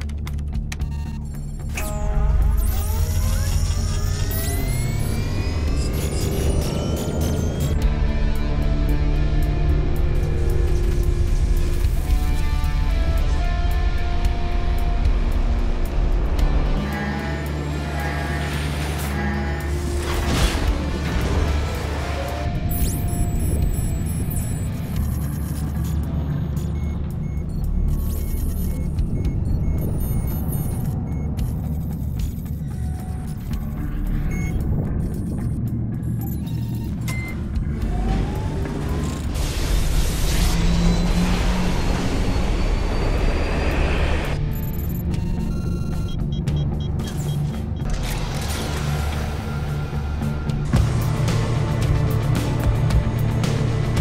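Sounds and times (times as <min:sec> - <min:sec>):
deep engine rumble: 0:00.0 - 0:54.0
sustained film music: 0:00.0 - 0:54.0
short electronic bleeps: 0:22.7 - 0:37.5.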